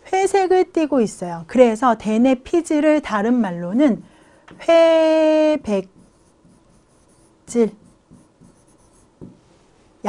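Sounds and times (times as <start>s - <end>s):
marker writing on a board: 5.7s - 9.4s.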